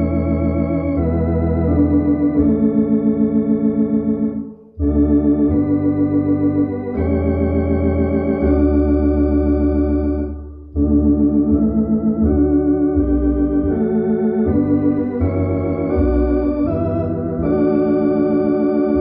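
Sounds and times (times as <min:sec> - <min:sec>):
low organ bass line: 0:00.0 - 0:19.0
organ playing hymn chords: 0:00.0 - 0:19.0.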